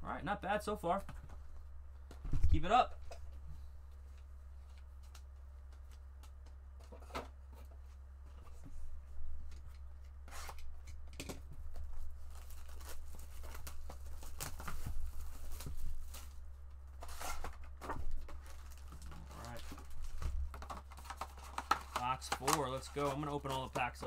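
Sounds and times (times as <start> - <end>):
foil packs crinkling: 12.1 - 16.4, 17.0 - 24.0.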